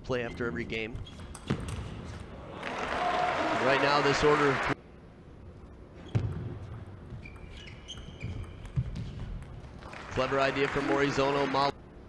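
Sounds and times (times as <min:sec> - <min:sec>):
table tennis ball hits: 0:01.2 - 0:02.2.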